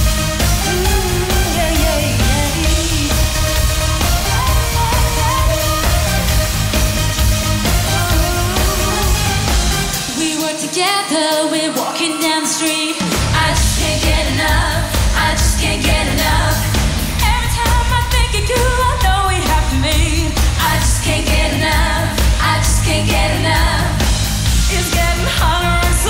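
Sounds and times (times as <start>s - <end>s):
band playing: 0.0s - 26.0s
female vocal group singing: 0.6s - 6.4s, 7.7s - 26.0s.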